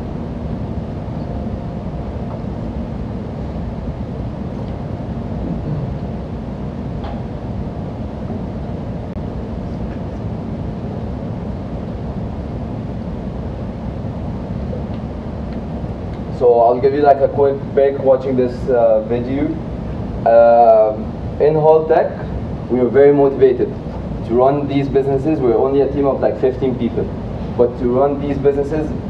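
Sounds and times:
low room rumble: 0:00.0 - 0:29.0.

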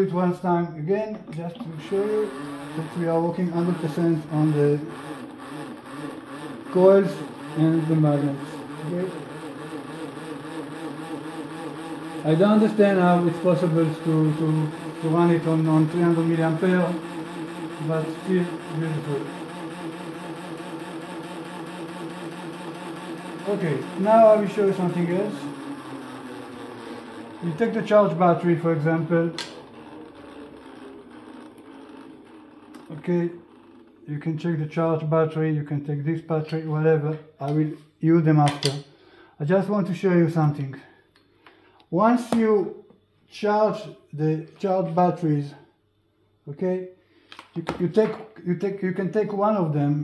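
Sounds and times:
generator mechanical hum: 0:00.0 - 0:50.0.

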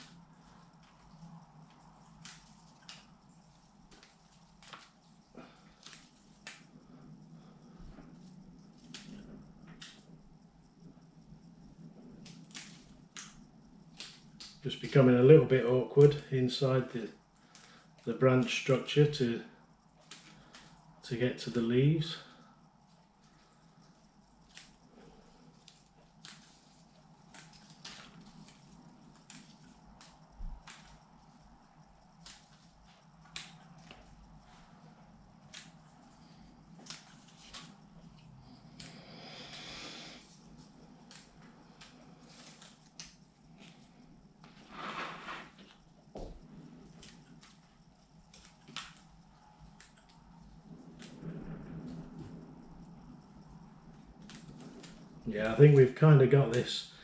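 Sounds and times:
scissors snipping leaves: 0:27.3 - 0:31.0.

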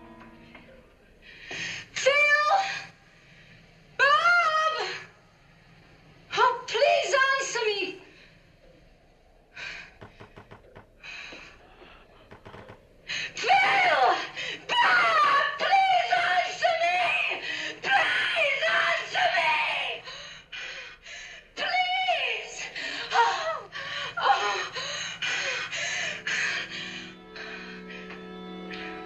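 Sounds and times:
music with sustained notes: 0:00.0 - 0:01.4, 0:25.3 - 0:29.0.

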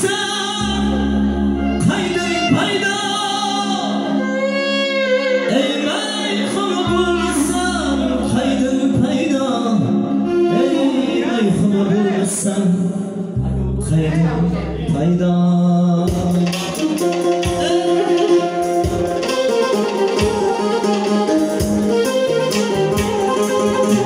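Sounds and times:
man singing into microphone: 0:00.0 - 0:18.8
synthesizer keyboard accompaniment: 0:00.0 - 0:24.0.

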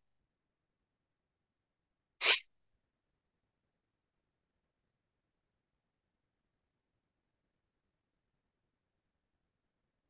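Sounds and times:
person sneezing: 0:02.2 - 0:02.4.

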